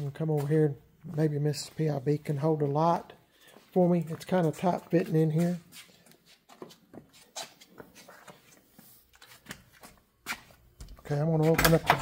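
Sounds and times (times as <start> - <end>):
footsteps on concrete floor: 0.0 - 11.8.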